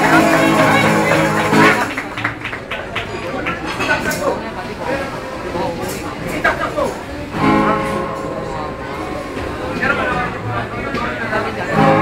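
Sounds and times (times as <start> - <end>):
guitar chords strummed: 0.0 - 1.9, 7.3 - 9.6
voices: 0.0 - 12.0.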